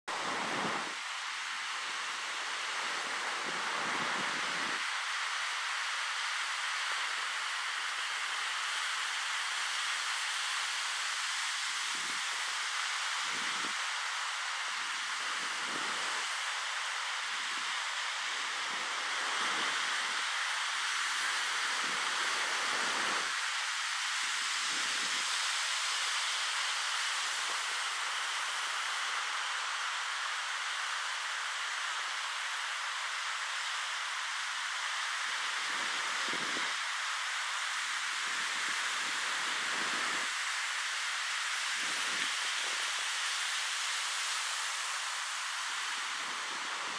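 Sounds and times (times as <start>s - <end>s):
ocean surf hiss: 0.1s - 46.9s.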